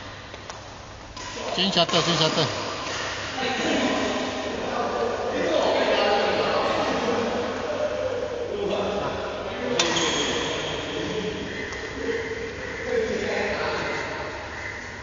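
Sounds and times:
indistinct voices in hall: 1.2s - 15.0s.

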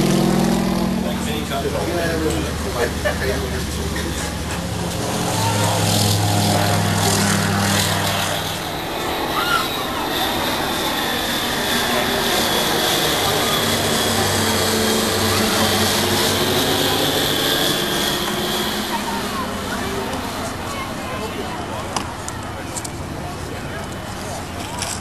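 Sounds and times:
light aircraft flying overhead: 0.0s - 25.0s.

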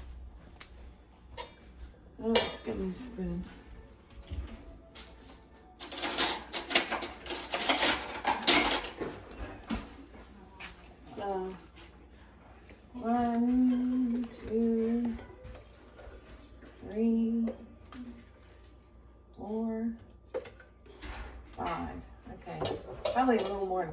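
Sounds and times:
cutlery rattling in drawer: 5.8s - 9.0s.

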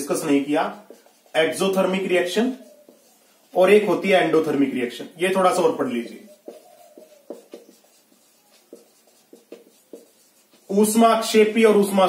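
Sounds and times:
man speaking: 0.0s - 2.6s, 3.5s - 6.4s, 10.7s - 12.0s
marker writing on whiteboard: 0.0s - 11.9s.

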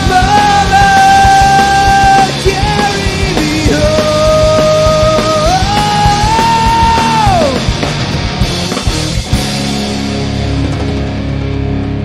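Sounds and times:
pop-punk band playing loud: 0.0s - 12.0s.

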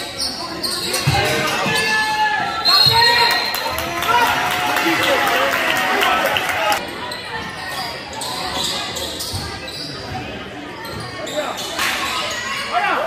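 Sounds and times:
voices in a large gym: 0.0s - 13.0s.

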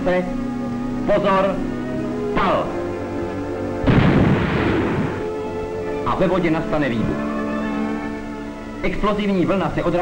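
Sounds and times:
background music: 0.0s - 10.0s
underwater explosion blast: 3.8s - 5.3s.

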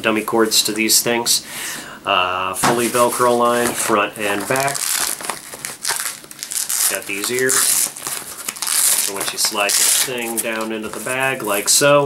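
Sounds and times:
fabric rustling and crinkling: 2.8s - 11.8s.

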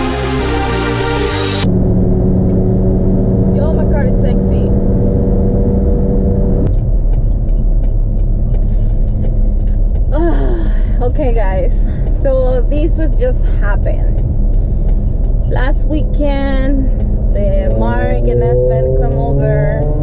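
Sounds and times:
electronic music: 0.0s - 1.7s
car engine drone: 0.0s - 20.0s
road rumble: 0.0s - 20.0s.

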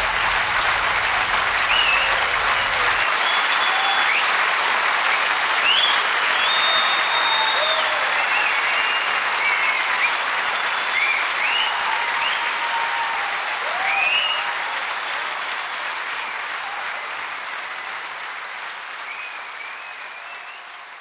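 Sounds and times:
audience shouting: 0.0s - 4.2s
audience clapping: 0.0s - 21.0s
whistles: 1.6s - 4.4s, 5.0s - 12.6s, 13.8s - 15.6s, 19.0s - 21.0s.

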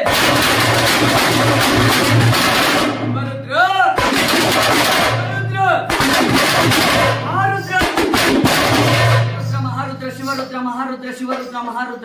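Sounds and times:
drums beaten with sticks: 0.0s - 10.6s.

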